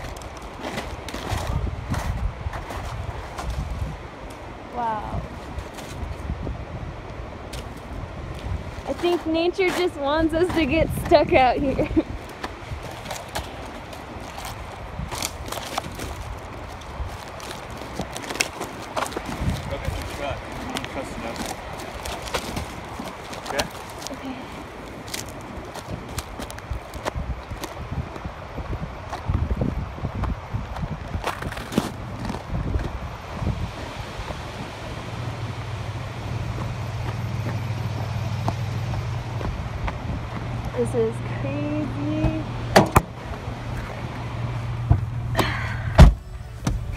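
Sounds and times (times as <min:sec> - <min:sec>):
branches snapping: 0:00.0 - 0:04.4, 0:12.2 - 0:27.8
footsteps crunching on snow: 0:00.0 - 0:04.5, 0:05.2 - 0:06.3, 0:07.4 - 0:28.3, 0:30.2 - 0:34.7.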